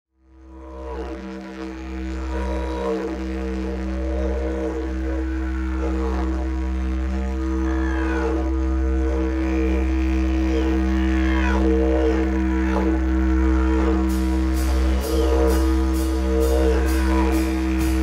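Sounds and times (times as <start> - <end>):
music with low drone and gliding tones: 0.1 - 18.0.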